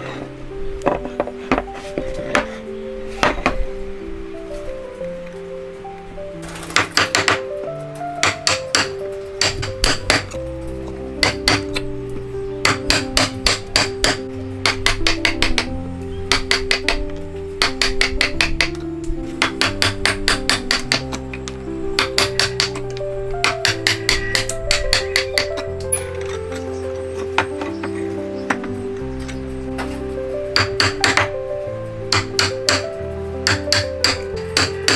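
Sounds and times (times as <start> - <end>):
background music: 0.0 - 34.9
chisel struck in sharp taps: 8.2 - 10.4, 11.2 - 11.8, 12.6 - 15.7, 30.6 - 31.3, 32.1 - 32.8, 33.5 - 34.9.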